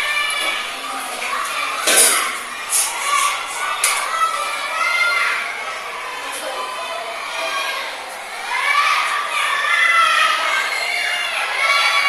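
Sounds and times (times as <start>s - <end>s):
children talking and shouting: 0.0s - 12.0s.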